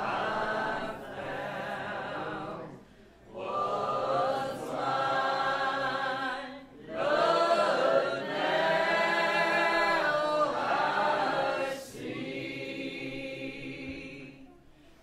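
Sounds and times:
congregation singing a hymn: 0:00.0 - 0:14.6.

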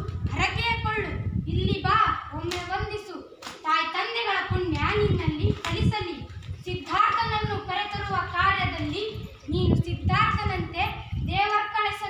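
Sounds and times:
girls speaking: 0:00.0 - 0:12.0.

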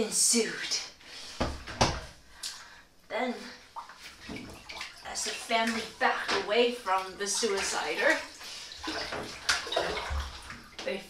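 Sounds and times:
body rustling in bathtub: 0:00.7 - 0:11.0
knock in bathtub: 0:01.4 - 0:02.1.

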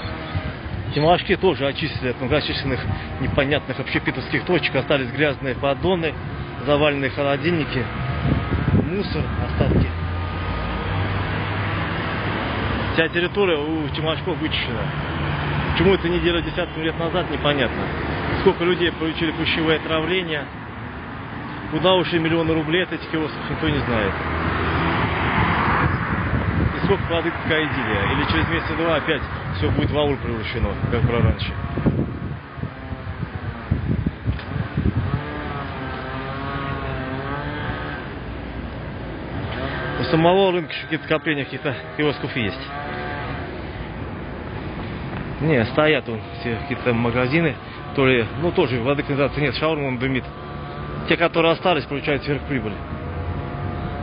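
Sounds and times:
cars driving past: 0:00.0 - 0:54.0
low traffic rumble: 0:00.0 - 0:54.0
wind on microphone: 0:07.8 - 0:12.9, 0:24.2 - 0:39.9
engine note wavering: 0:34.6 - 0:54.0.

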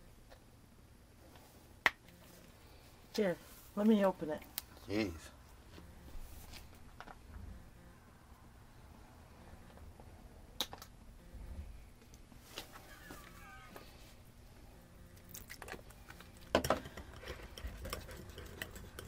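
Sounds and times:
whisk scraping in ceramic bowl: 0:17.1 - 0:19.0.

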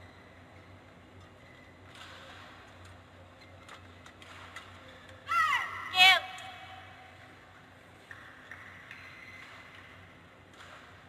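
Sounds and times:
high-pitched voice yelling: 0:05.3 - 0:06.6.

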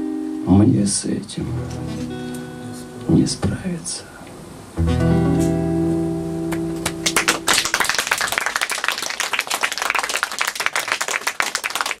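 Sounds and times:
acoustic guitar chord ringing: 0:01.4 - 0:03.2, 0:04.8 - 0:07.6
audience applause: 0:06.5 - 0:12.0.

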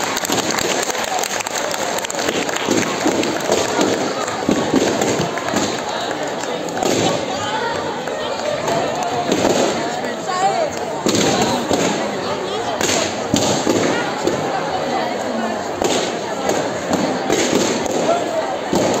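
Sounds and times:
audience chatter: 0:00.0 - 0:19.0.

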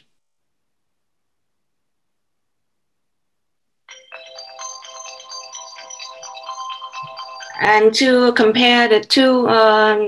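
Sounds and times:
electronic tone tune: 0:03.9 - 0:07.9.

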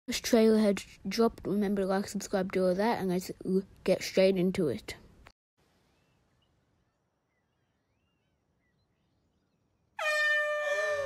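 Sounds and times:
faint bird chirps: 0:05.8 - 0:11.0.

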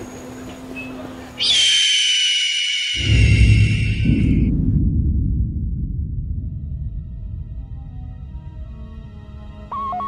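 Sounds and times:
loud high-pitched ringing tone: 0:00.9 - 0:04.5.

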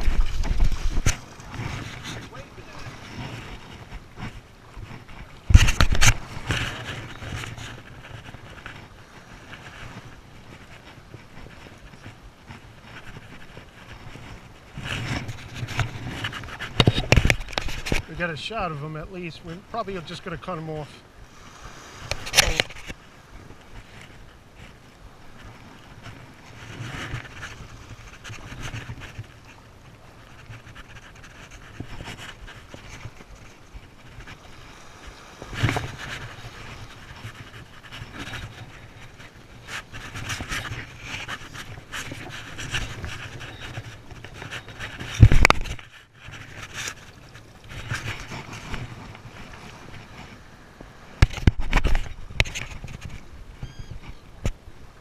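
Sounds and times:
wind on microphone: 0:00.0 - 0:18.3, 0:21.0 - 0:55.0
small waves washing over sand: 0:00.0 - 0:55.0.

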